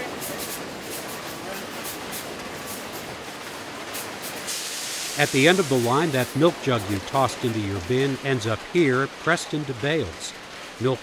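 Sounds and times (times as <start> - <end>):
air jets hissing puffs: 0.0 - 3.2, 3.8 - 8.1
sorting machinery running: 0.0 - 11.0.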